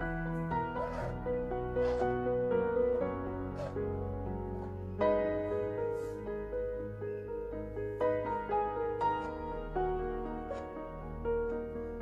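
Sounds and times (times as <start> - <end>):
piano background music: 0.0 - 12.0.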